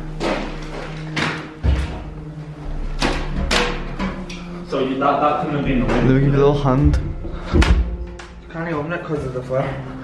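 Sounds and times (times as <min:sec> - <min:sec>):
low background music drone: 0:00.0 - 0:10.0.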